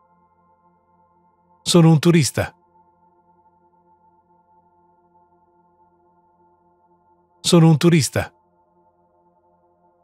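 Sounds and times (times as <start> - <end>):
calm background music: 0.0 - 10.0.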